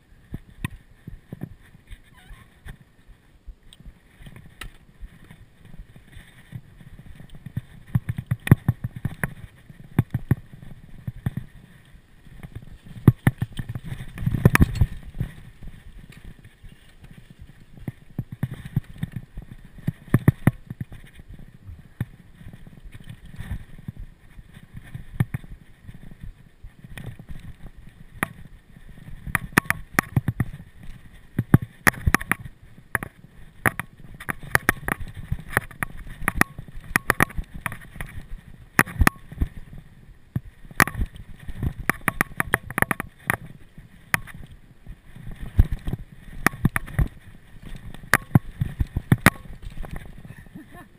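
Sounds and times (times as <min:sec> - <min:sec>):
wind buffeting microphone: 0:00.0 - 0:50.9
bike clattering and rattling: 0:04.1 - 0:50.5.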